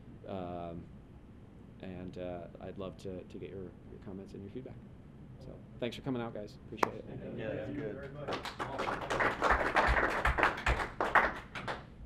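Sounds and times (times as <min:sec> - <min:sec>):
audience clapping: 0:07.9 - 0:12.0.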